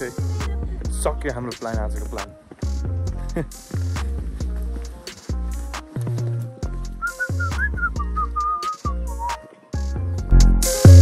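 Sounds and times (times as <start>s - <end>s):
background music with beat: 0.0s - 11.0s
man whistling a tune: 7.0s - 9.5s.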